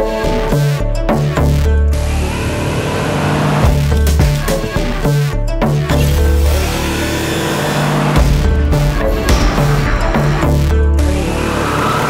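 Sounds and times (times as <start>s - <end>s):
held low bass note: 1.3s - 11.7s
rhythmic beats: 3.6s - 12.0s.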